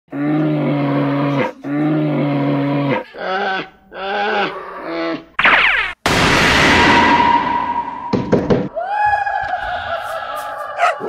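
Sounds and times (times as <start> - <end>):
deep bear-like roars: 0.1 - 5.3.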